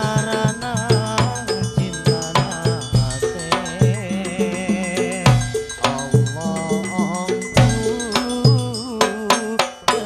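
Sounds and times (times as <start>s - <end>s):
frame drums and bass drum: 0.0s - 10.0s
man singing into microphone: 0.0s - 10.0s.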